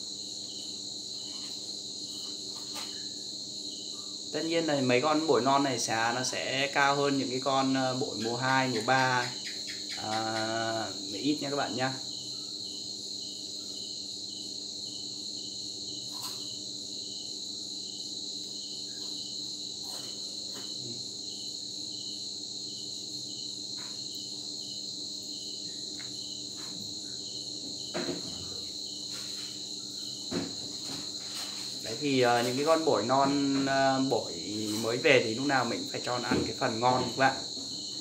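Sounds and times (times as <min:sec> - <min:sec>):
insects chirping: 0:00.0 - 0:38.0.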